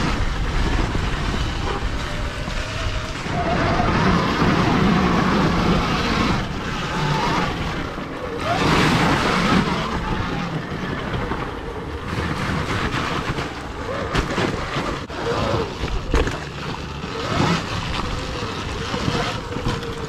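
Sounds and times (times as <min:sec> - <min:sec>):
electric dirt bike tyres and chain: 0:00.0 - 0:20.0.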